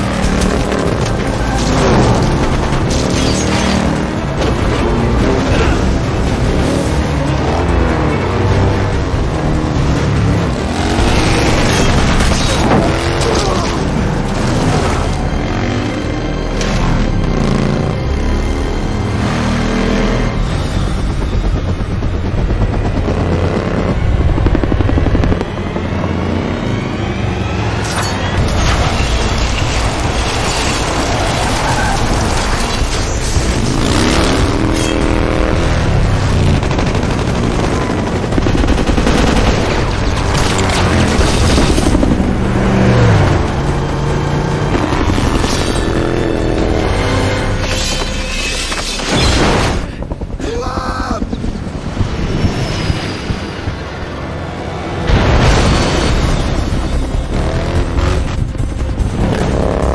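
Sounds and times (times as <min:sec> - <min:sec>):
motorcycle engine revving: 0:00.0 - 0:28.9, 0:29.9 - 0:48.3, 0:56.1 - 0:59.9
dramatic orchestral score: 0:00.0 - 0:59.9
helicopter: 0:00.0 - 0:59.9
machine-gun fire: 0:35.8 - 0:42.4.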